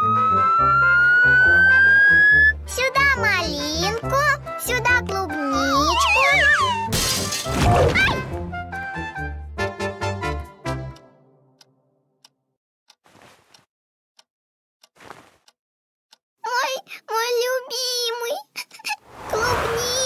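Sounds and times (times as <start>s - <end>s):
cartoon girl laughing: 18.4s - 20.0s.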